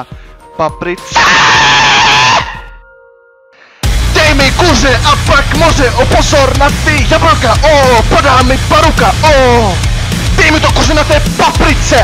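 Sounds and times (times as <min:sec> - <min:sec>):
man screaming vocal: 0:01.1 - 0:02.7.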